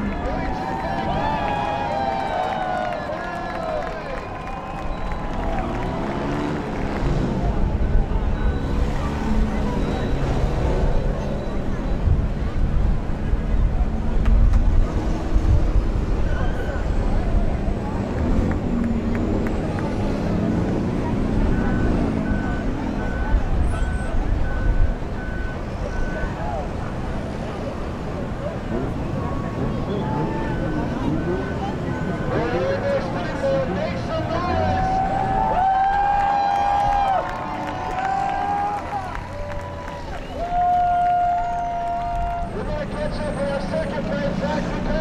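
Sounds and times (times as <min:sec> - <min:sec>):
voices: 0:00.0 - 0:45.0
race car engines idling: 0:15.5 - 0:45.0.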